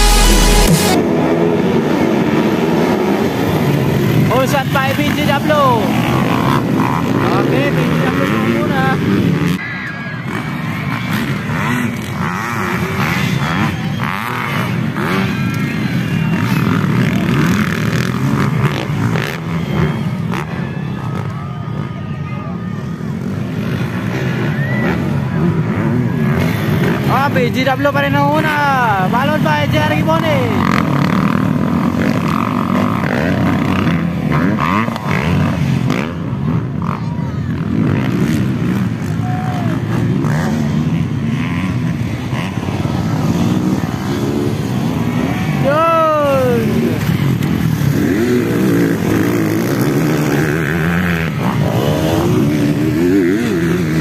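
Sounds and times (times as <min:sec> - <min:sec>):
dirt bike engines revving: 0:00.0 - 0:54.0
voices: 0:03.3 - 0:54.0.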